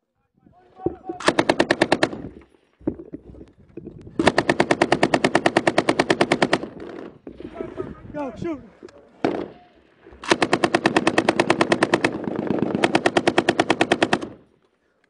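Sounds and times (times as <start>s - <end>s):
machine gun bursts: 1.0s - 2.6s, 4.2s - 7.2s, 10.2s - 14.4s.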